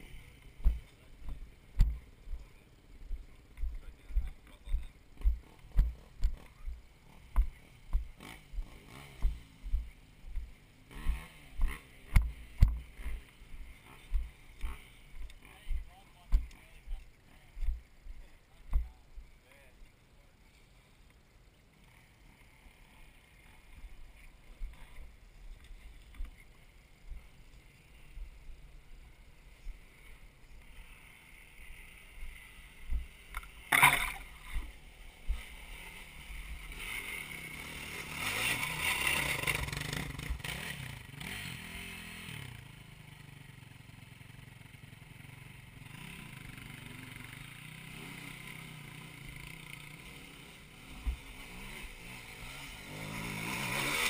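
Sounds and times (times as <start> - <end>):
dirt bike engine revving: 0.0 - 16.8, 21.8 - 54.0
footsteps on dirt slope: 0.0 - 19.3
faint voices: 0.0 - 36.8
knocks and scuffs: 0.6 - 2.5, 3.1 - 8.2, 15.2 - 16.6.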